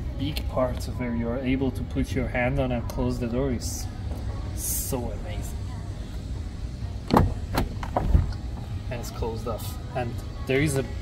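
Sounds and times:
car door thumping shut: 7.1s - 8.4s.

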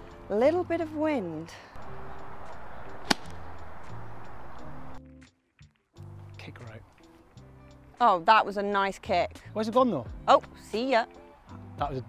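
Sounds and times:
background music: 0.0s - 12.0s
golf club striking ball: 2.2s - 4.9s.

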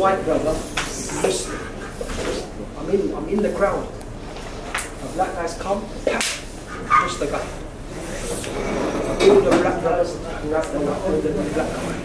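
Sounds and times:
man speaking: 0.0s - 1.8s, 2.6s - 4.0s, 5.0s - 8.6s, 9.2s - 12.0s.

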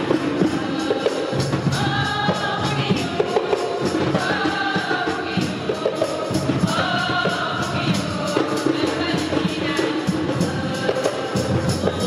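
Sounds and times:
steady percussive beat: 0.0s - 12.0s
women's choir singing a hymn: 0.0s - 12.0s.

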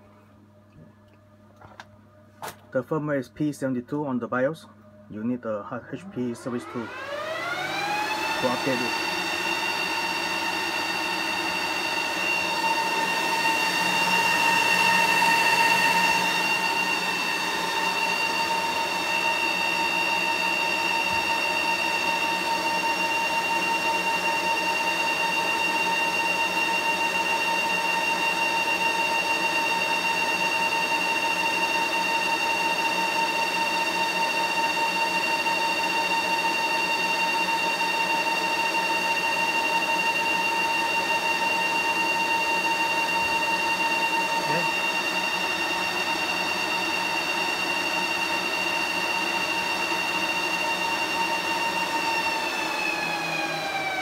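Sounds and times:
server cooling fans whining: 0.0s - 54.0s.

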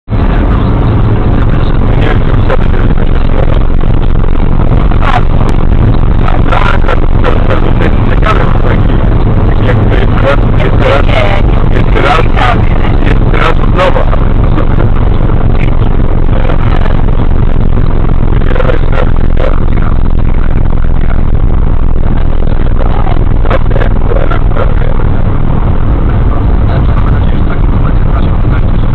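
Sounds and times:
car road and wind noise: 0.0s - 28.9s.

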